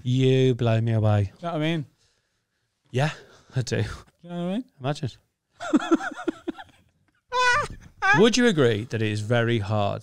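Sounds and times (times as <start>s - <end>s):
man laughing: 5.6s - 6.8s.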